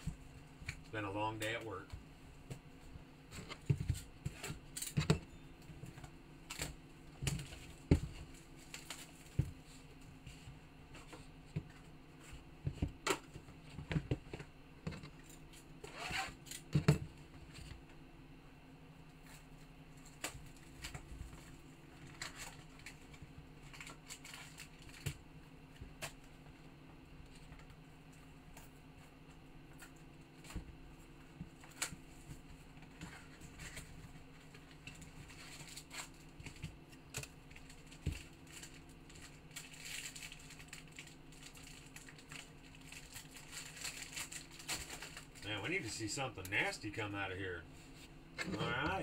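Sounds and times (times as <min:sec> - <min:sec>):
low steady hum: 0:00.0 - 0:49.0
plastic wrap crinkling and tearing: 0:22.1 - 0:25.1, 0:37.2 - 0:45.5.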